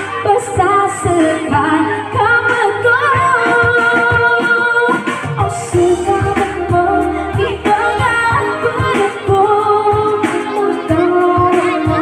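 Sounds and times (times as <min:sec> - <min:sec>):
electronic keyboard with beat: 0:00.0 - 0:12.0
woman singing into microphone: 0:00.0 - 0:12.0.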